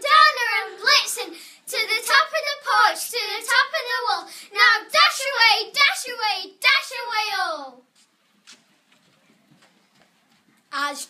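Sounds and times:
child reciting verse: 0.0 - 7.8, 10.7 - 11.0.

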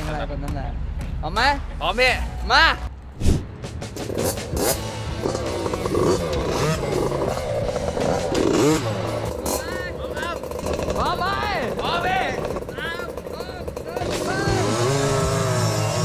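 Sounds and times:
dirt bike engines revving: 4.0 - 16.0.

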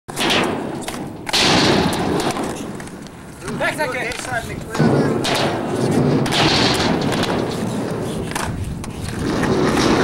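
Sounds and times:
skateboard wheels rolling on concrete: 0.1 - 10.0.

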